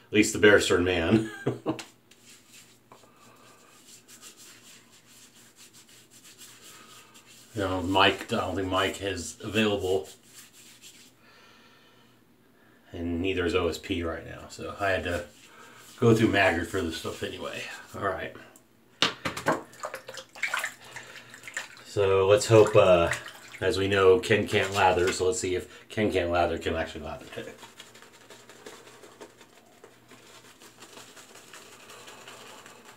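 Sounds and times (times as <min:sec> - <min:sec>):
shaving brush scrubbing face: 0:01.8 - 0:11.2, 0:14.7 - 0:18.0, 0:20.2 - 0:25.2, 0:26.7 - 0:32.9.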